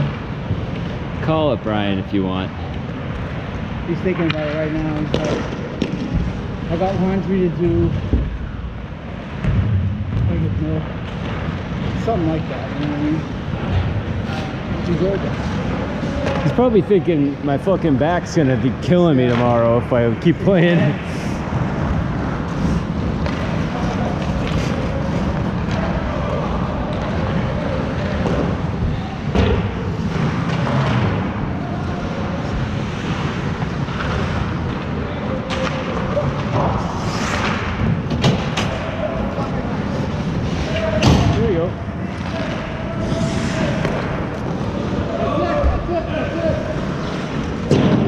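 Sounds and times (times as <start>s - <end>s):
clacks of sticks and puck: 4.0s - 7.0s, 14.3s - 16.6s, 18.5s - 19.8s, 21.5s - 41.4s, 42.0s - 45.8s
skate blades scraping ice: 20.6s - 28.7s, 35.8s - 38.0s
players calling out: 38.6s - 48.0s.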